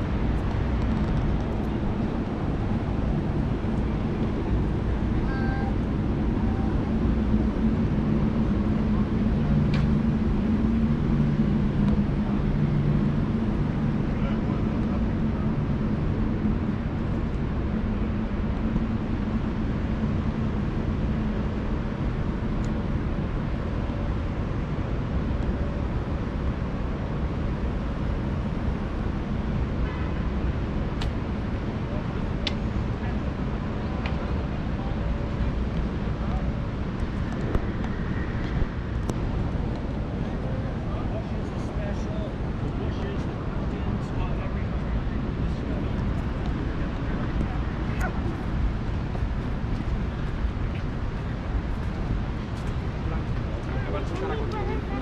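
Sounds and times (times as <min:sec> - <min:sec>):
city traffic rumble: 0:00.0 - 0:55.0
low mechanical hum: 0:00.0 - 0:55.0.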